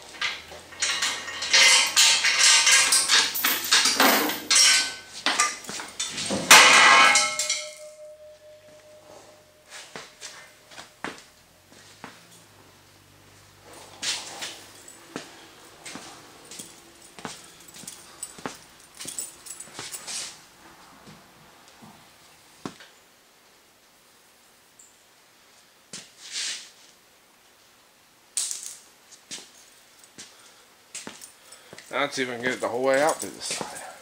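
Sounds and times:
metal clicks and knocks: 0.1 - 9.0.

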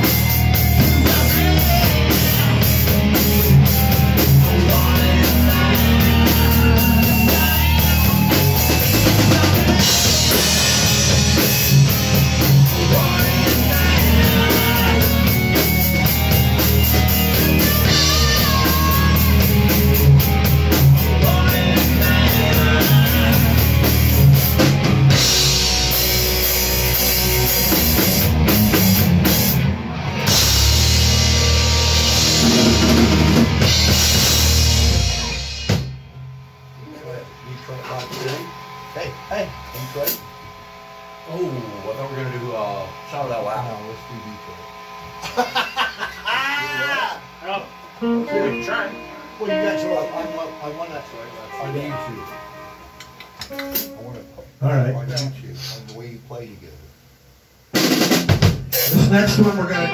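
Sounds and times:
live rock band playing: 0.0 - 36.6, 46.2 - 54.8, 57.7 - 59.9
stray guitar notes: 0.0 - 40.3, 46.6 - 55.4
voices: 45.4 - 52.6.

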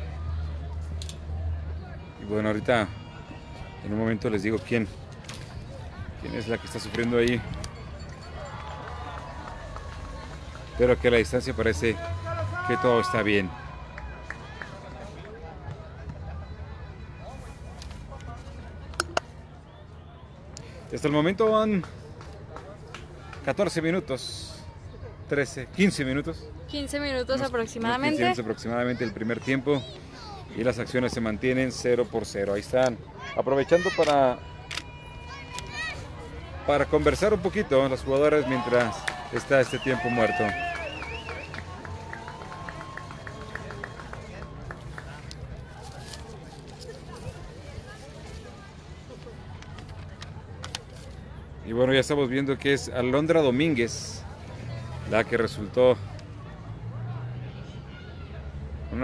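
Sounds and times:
distant voices talking: 0.0 - 59.0.

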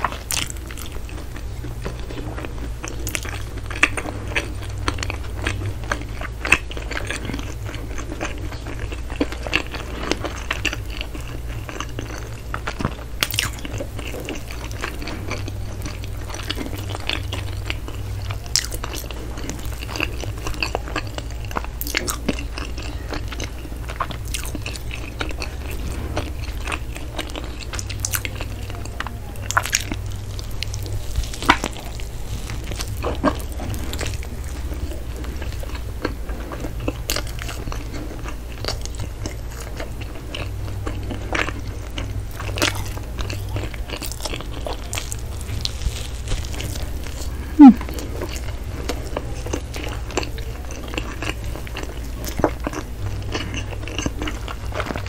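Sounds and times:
chewing bread with wet smacks: 0.0 - 55.0
steady low hum: 0.0 - 55.0.

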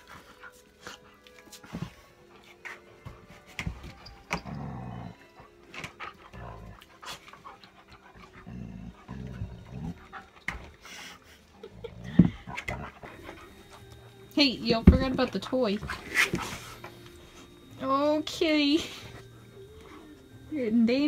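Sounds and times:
dogs panting: 0.0 - 21.0
low growls: 8.0 - 10.1.

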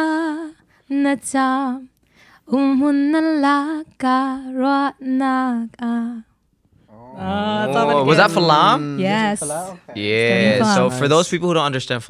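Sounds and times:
woman singing unaccompanied: 0.0 - 1.9, 2.5 - 6.3, 7.4 - 9.7, 10.4 - 11.0.

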